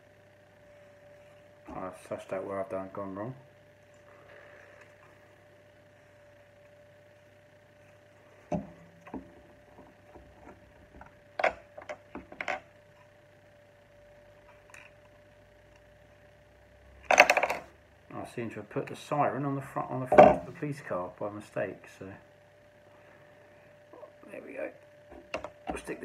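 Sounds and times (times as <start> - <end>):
faint steady hum: 0.0 - 26.0.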